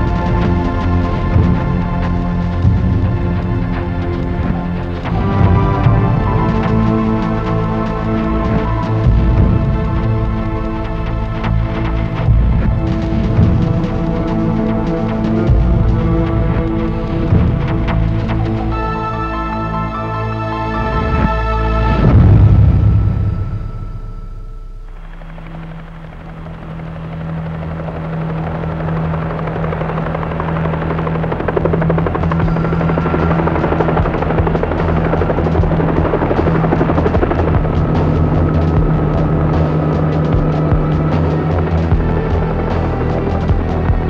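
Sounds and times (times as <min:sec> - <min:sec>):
helicopter rotor chopping: 0:00.0 - 0:19.0, 0:24.8 - 0:44.0
low music drone: 0:00.0 - 0:44.0
deep boom: 0:21.0 - 0:26.4.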